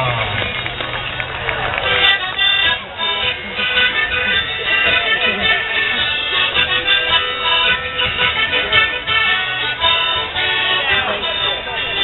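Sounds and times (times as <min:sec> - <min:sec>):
accordion: 0:00.0 - 0:12.0
folk band playing dance tune: 0:00.0 - 0:12.0.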